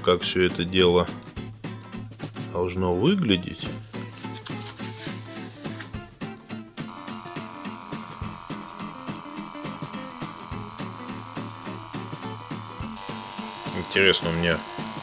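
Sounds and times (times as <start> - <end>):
background music: 0.0 - 15.0
fabric cuff rubbing: 3.8 - 6.2
electric air pump running: 6.8 - 15.0.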